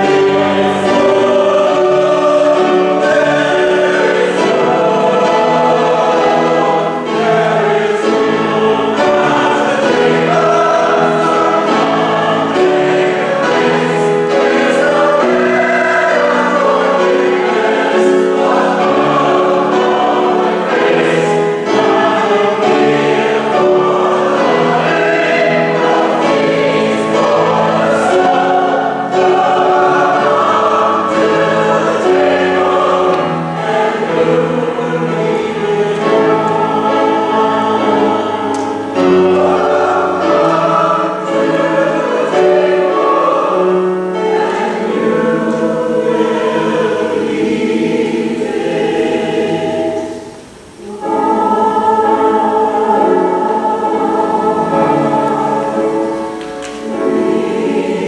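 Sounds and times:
choir singing: 0.0s - 58.0s
piano accompaniment: 0.0s - 58.0s.

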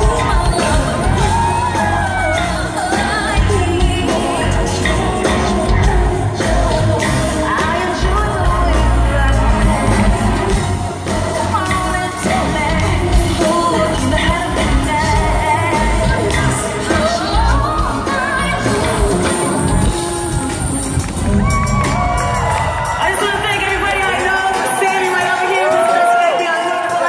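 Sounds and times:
woman singing: 0.0s - 22.1s
live pop band: 0.0s - 27.0s.

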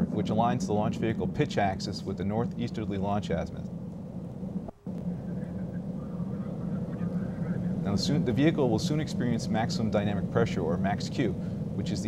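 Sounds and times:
rocket engines rumbling: 0.0s - 12.0s.

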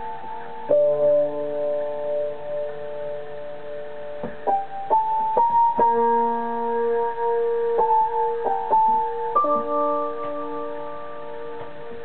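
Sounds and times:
electric piano melody: 0.0s - 12.0s.

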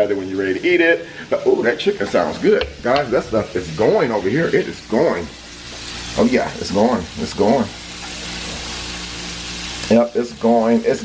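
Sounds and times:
chicken deep-frying in oil: 0.0s - 11.0s.

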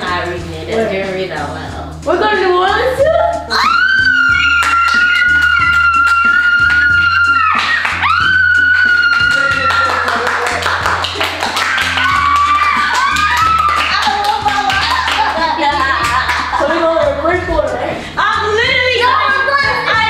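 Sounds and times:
music with steady beat: 0.0s - 20.0s
children screaming: 3.5s - 10.4s, 11.7s - 14.6s
people clapping: 4.3s - 16.7s.

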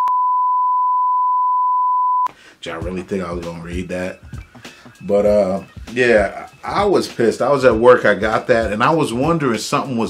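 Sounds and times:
steady pure test tone beep: 0.0s - 2.3s.

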